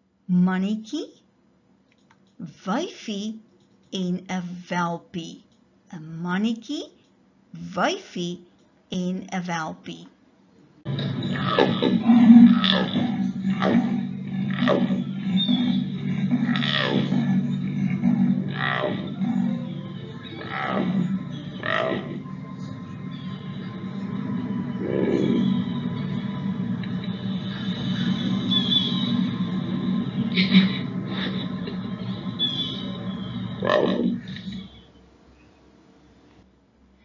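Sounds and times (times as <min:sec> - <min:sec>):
low steady rumble: 0:10.9 - 0:21.6
low rumble: 0:10.9 - 0:34.8
leopard falling call: 0:11.4 - 0:19.6.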